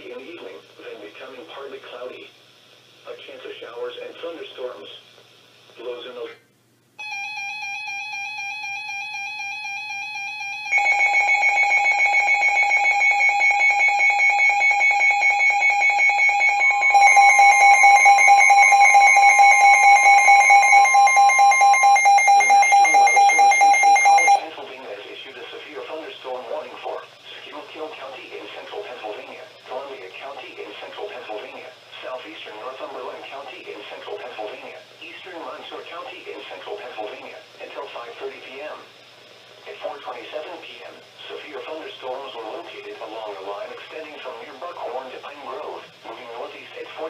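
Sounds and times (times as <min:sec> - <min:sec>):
broadcast voice: 0:00.0 - 0:02.4, 0:03.0 - 0:06.5, 0:22.1 - 0:39.0, 0:39.6 - 0:47.0
long warning alarm tone: 0:07.0 - 0:24.4
steady alarm tone: 0:07.0 - 0:24.5
rapid beeping: 0:09.6 - 0:24.4.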